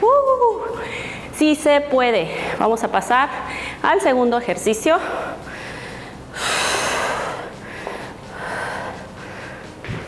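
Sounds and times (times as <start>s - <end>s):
woman breathing hard: 0.7s - 1.4s, 3.3s - 3.8s, 4.9s - 10.0s.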